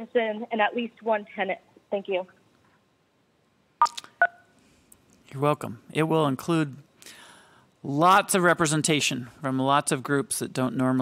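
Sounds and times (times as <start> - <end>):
touch-tone keypad beeps: 3.8 - 4.4.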